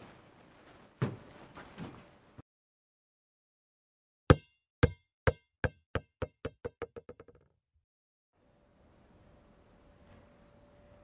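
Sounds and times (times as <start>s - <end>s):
ball bouncing on hard surface: 4.3s - 7.5s.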